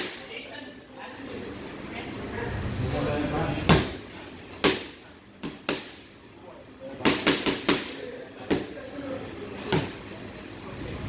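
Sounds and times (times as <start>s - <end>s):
gloved strikes on training pads: 4.6s - 6.0s.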